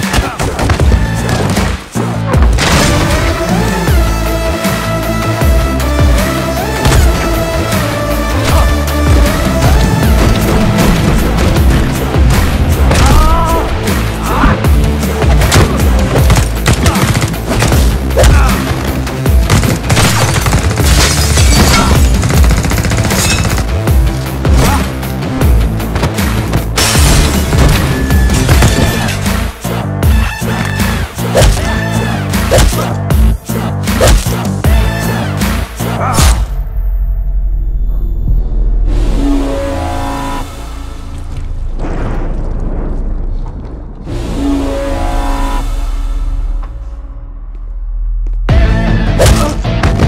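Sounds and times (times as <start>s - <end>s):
rapid gunfire: 15.4s - 23.9s.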